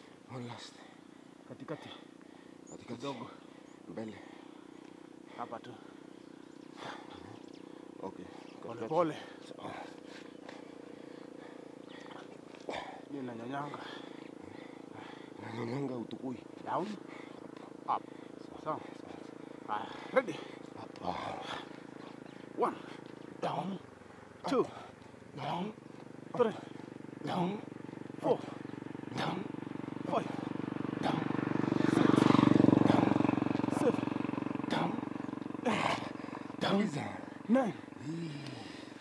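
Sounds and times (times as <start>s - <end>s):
people grunting and breathing: 0.0s - 39.0s
steady low hum: 0.0s - 39.0s.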